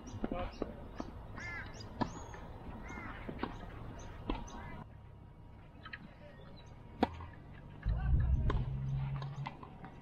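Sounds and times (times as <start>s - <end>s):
bird calling: 0.0s - 4.8s.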